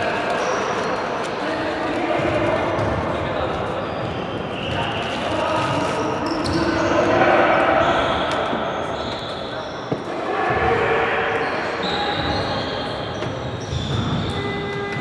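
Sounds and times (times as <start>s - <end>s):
voices echoing in a hall: 0.0s - 15.0s
shoes squeaking on court floor: 2.2s - 10.8s, 11.4s - 15.0s.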